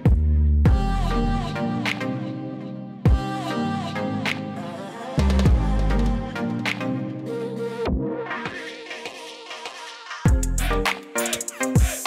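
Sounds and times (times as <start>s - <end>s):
drumless background music: 0.0s - 8.7s.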